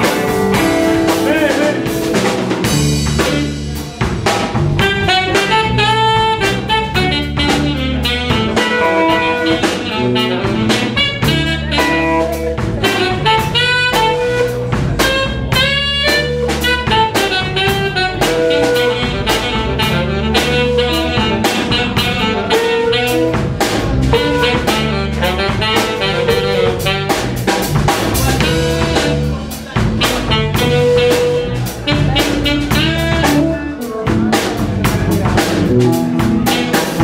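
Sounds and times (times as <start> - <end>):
bass: 0.0 - 37.0
drum kit steady beat: 0.0 - 37.0
electric guitar: 0.0 - 37.0
saxophone lead lines: 0.0 - 37.0.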